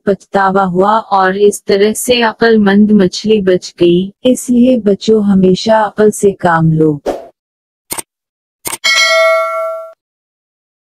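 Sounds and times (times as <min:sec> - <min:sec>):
bright bell ding: 0:08.8 - 0:10.0.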